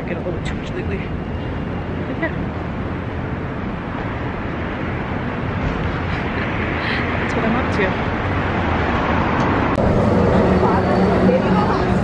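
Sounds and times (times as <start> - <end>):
bus driving past: 0.0 - 12.0
city street traffic: 0.0 - 12.0.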